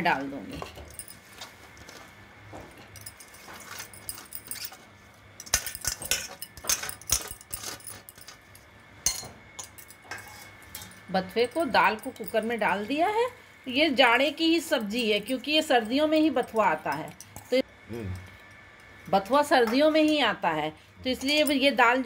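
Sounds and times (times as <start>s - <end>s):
steel utensils clinking on pot: 5.4s - 8.4s, 9.1s - 12.8s, 14.7s - 17.6s, 21.1s - 21.8s.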